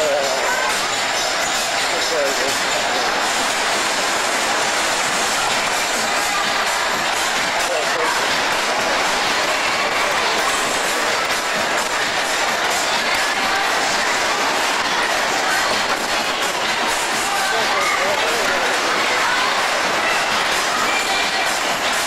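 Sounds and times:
amusement ride cars clattering: 0.0s - 22.0s.

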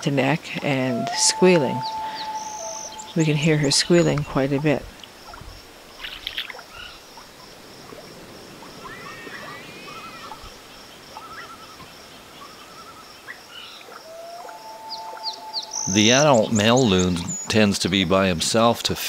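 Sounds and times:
young loon squealing calls: 0.6s - 5.4s, 8.8s - 10.5s, 11.2s - 11.8s, 13.9s - 16.4s.

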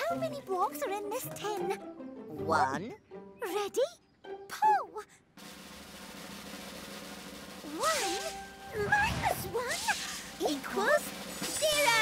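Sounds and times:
snare drum roll: 5.4s - 12.0s.

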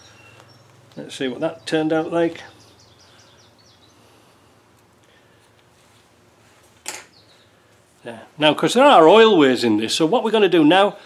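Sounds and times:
faint bird chirps: 0.0s - 4.0s.

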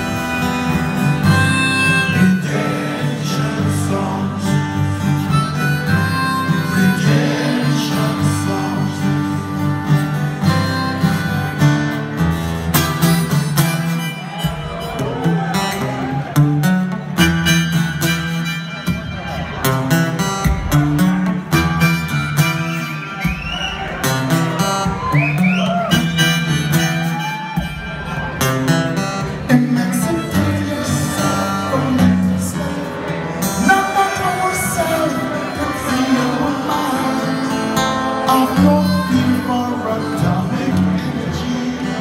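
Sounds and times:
harmonica bending notes: 0.0s - 15.9s, 16.6s - 42.0s
acoustic guitar: 0.0s - 42.0s.

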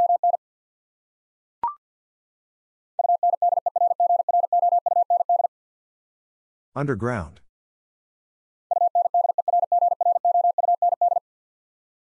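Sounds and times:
morse code tone: 8.7s - 11.2s.

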